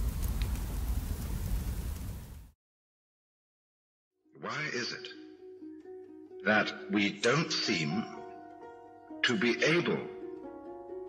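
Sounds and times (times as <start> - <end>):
rain-like rushing noise: 0.0 - 2.6.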